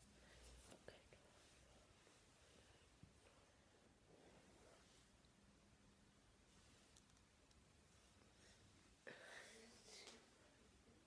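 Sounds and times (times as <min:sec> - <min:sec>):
faint whispering: 0:00.0 - 0:05.1, 0:08.1 - 0:11.0
soft clicks: 0:06.9 - 0:07.7.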